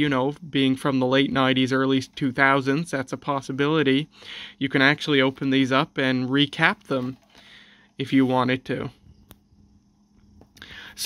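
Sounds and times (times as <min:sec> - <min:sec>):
soft breath: 0:04.1 - 0:04.6, 0:07.3 - 0:08.0, 0:10.6 - 0:11.0.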